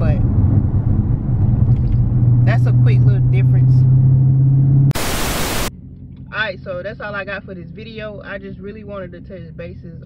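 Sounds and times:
car engine droning in cabin: 0.0 - 10.0
static-like hiss burst: 4.9 - 5.7.

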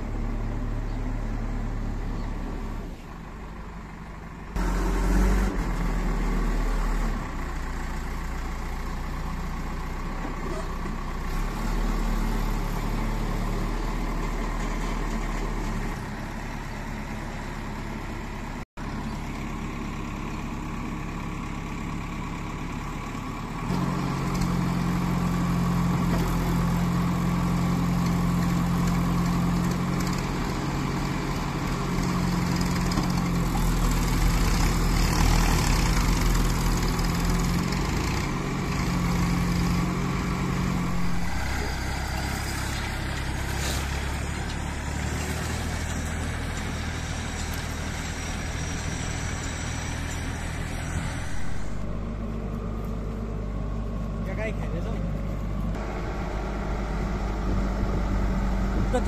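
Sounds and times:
diesel engine running under load: 0.0 - 59.0
backhoe arm digging soil: 23.7 - 53.1.

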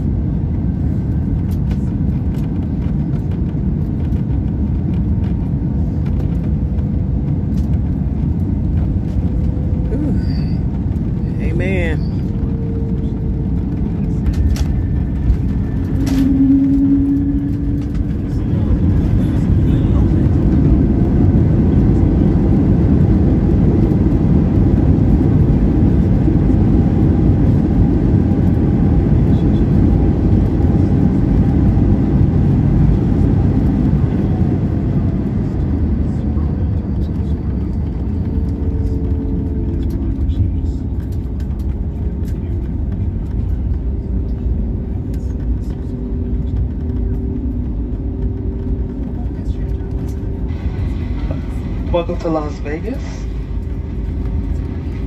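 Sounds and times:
jet engines rumbling: 0.0 - 55.0
wheels on runway: 0.0 - 55.0.

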